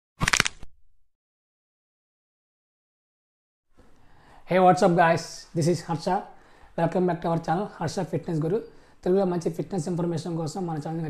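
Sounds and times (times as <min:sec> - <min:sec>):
sharp cracks: 0:00.2 - 0:00.7.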